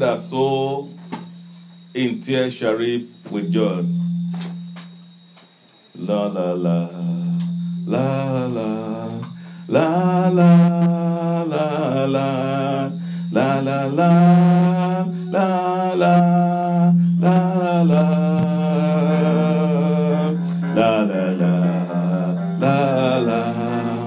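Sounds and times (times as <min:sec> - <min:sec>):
steady low drone: 0:03.2 - 0:24.0.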